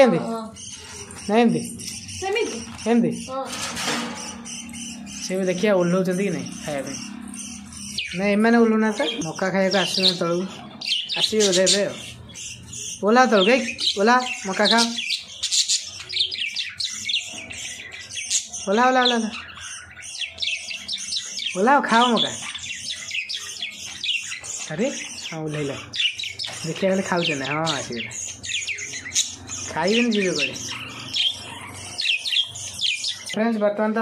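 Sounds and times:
budgerigars chirping and chattering: 0.0s - 34.0s.

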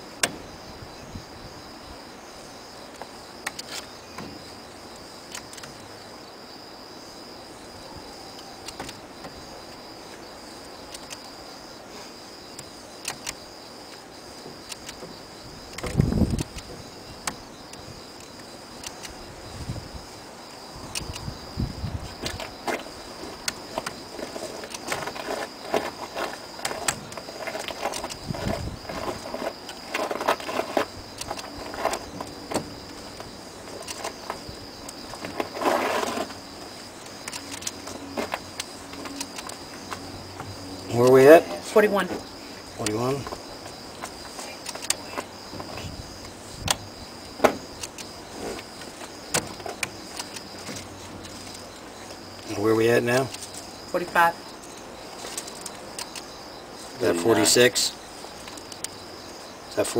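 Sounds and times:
crickets trilling: 0.0s - 59.9s.

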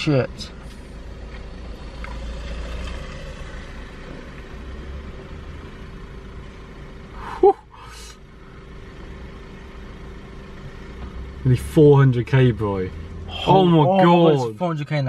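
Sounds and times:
person exclaiming: 7.2s - 8.2s.

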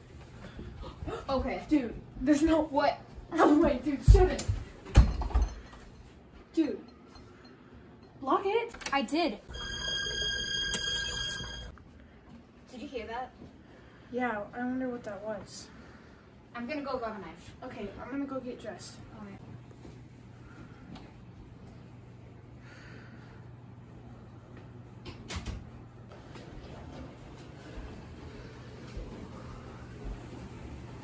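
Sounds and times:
low room hum: 0.0s - 31.0s
high-pitched ringing tone: 9.5s - 11.7s.

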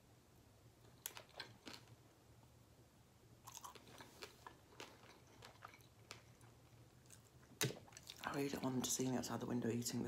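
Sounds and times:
low steady hum: 0.0s - 10.0s
person chewing food: 0.9s - 2.0s, 3.4s - 8.3s.

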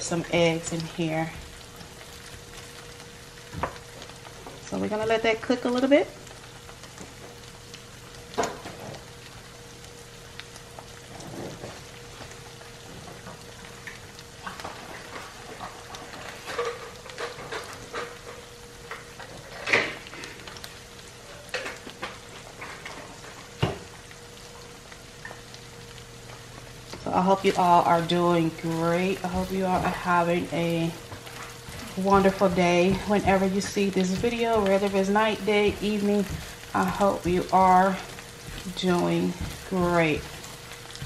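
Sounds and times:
crackles and pops: 0.0s - 41.0s
faint steady hum: 0.0s - 41.0s
food sizzling in a pan: 0.0s - 41.0s.

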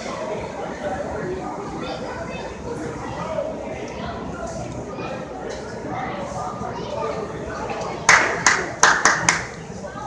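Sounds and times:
faint crowd chatter: 0.0s - 10.0s
sharp hand claps: 8.1s - 9.6s.

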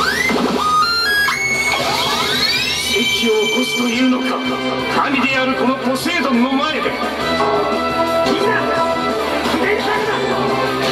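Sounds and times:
electronic slot machine effects: 0.8s - 9.4s
game music: 1.3s - 10.9s.

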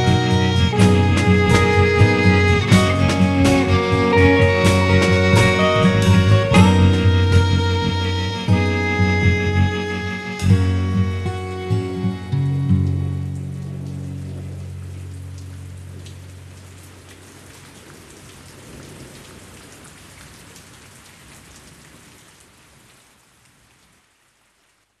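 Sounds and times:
low music chord ringing: 0.0s - 17.0s
steady rain falling: 0.0s - 25.0s.

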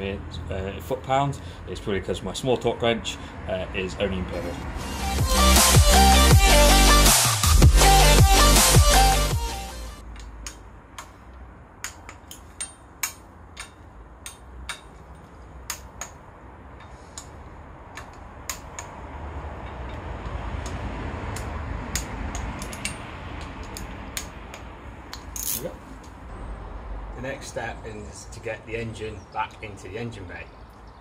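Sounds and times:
hand ratchet clicking: 16.8s - 25.6s.

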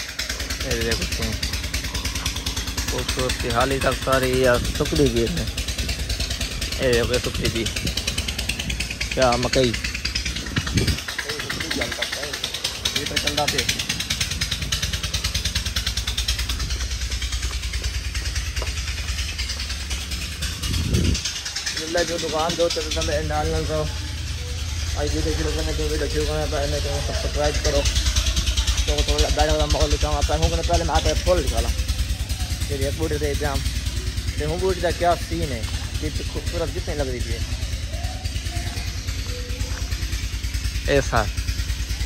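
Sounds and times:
steady low rumble: 0.0s - 42.0s
man talking: 2.9s - 5.5s, 6.7s - 7.8s, 21.8s - 23.9s
wind buffeting microphone: 4.3s - 13.0s, 15.9s - 22.4s.

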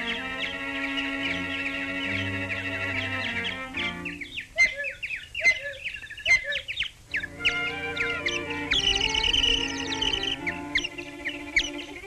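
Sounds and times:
whistled bird chirps: 0.0s - 12.0s.

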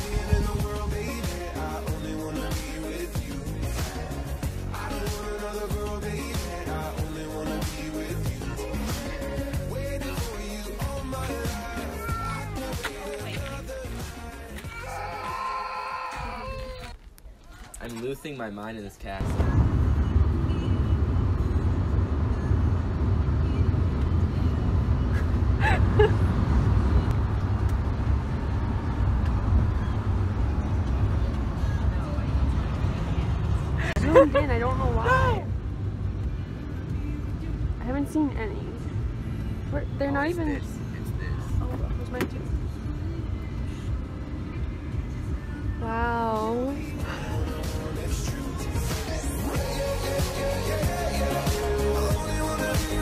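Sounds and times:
road and engine noise in car: 0.0s - 15.7s, 17.8s - 53.0s.

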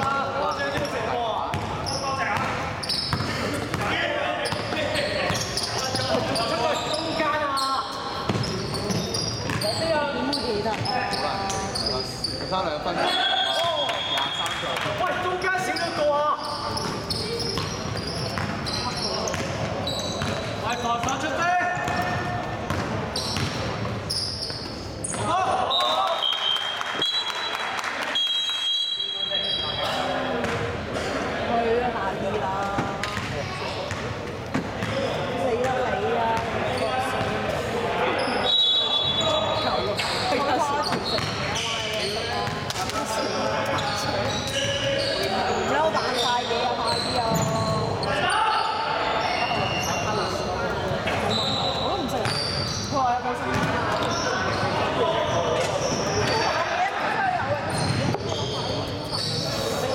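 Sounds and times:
short high squeaks: 2.8s - 3.2s.

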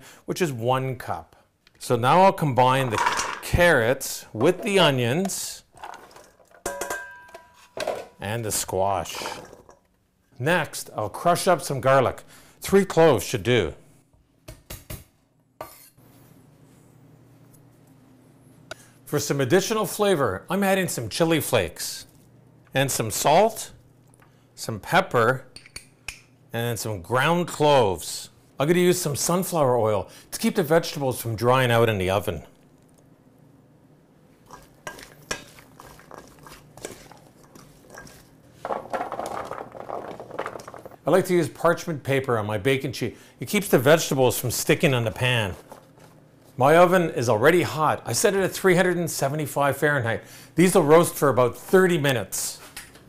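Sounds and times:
spoon scraping and rustling: 5.8s - 7.8s, 9.1s - 9.8s, 34.4s - 41.0s, 45.1s - 46.2s
spoon clinking in steel bowl: 6.6s - 7.6s.

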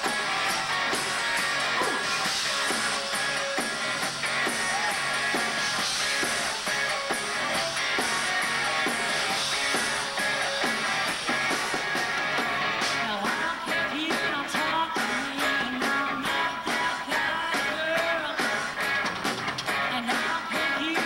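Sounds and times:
drum kit: 0.0s - 21.0s
electric guitar: 0.0s - 21.0s
rock band playing: 0.0s - 21.0s.

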